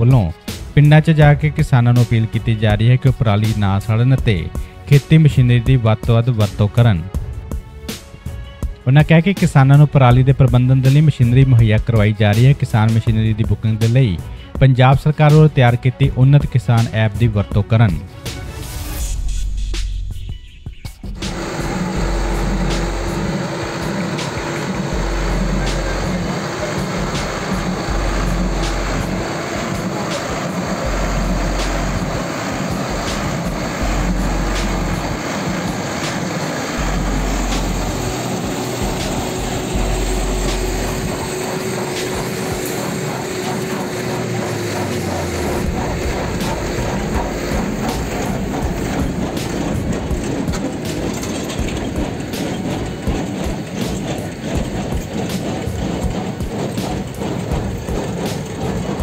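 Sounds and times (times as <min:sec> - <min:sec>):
tractor engine under load: 0:21.2 - 0:59.0.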